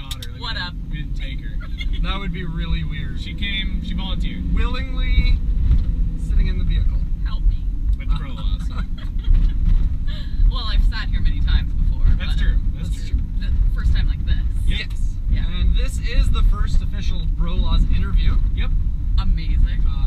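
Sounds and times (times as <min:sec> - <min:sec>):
people talking: 0:00.0 - 0:05.4, 0:06.2 - 0:20.0
truck road and engine rumble: 0:00.0 - 0:20.0.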